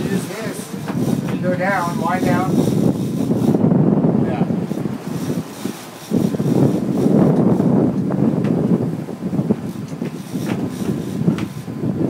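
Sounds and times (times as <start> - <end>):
boat and sea noise: 0.0 - 12.0
wind buffeting microphone: 0.0 - 12.0.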